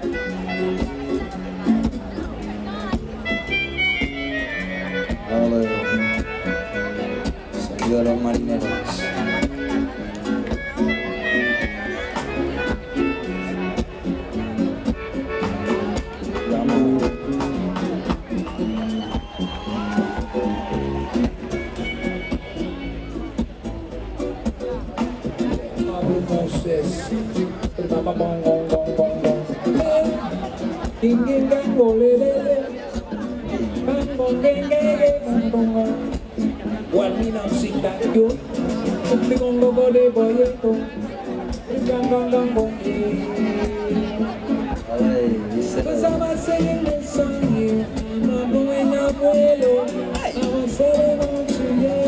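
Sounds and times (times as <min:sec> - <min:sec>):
bass: 0:00.0 - 0:52.0
drums: 0:00.0 - 0:52.0.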